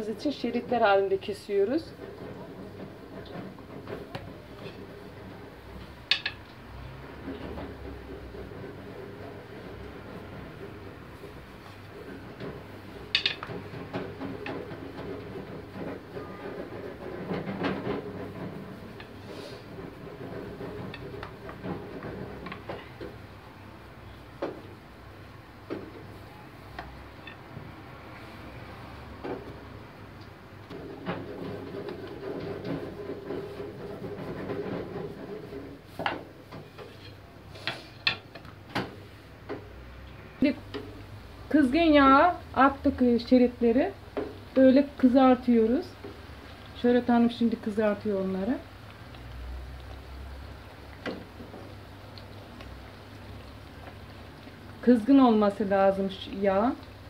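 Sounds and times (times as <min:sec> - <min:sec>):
rolling pin rumbling on dough: 0:00.0 - 0:23.4, 0:30.5 - 0:37.1.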